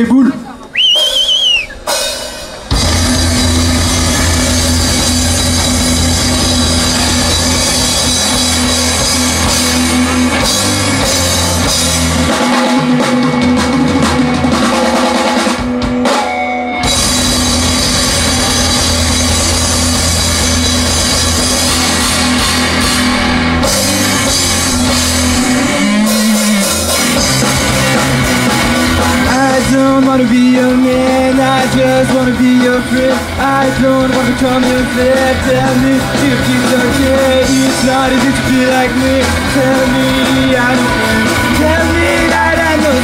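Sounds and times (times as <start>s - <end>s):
drum kit: 0.0s - 43.0s
electric guitars: 0.3s - 43.0s
rock band droning chord: 1.9s - 43.0s
sustained low bass notes: 2.7s - 12.4s, 16.9s - 43.0s.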